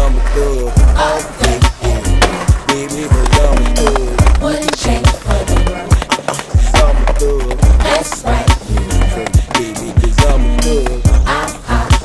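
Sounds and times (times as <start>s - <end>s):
hip-hop music with heavy bass: 0.0s - 12.0s.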